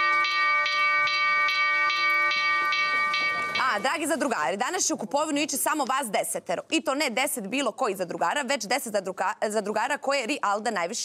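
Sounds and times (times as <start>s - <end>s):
electronic bell ringing: 0.0s - 4.0s.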